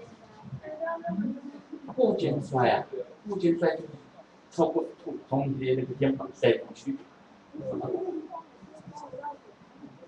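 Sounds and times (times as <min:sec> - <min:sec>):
faint voices murmuring: 0:00.0 - 0:10.0.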